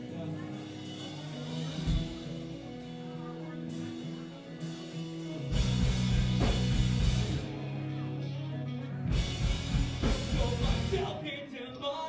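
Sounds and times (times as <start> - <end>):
drum kit: 0.0 - 8.0, 9.0 - 11.2
bass guitar: 0.0 - 12.0
electric guitars: 0.0 - 12.0.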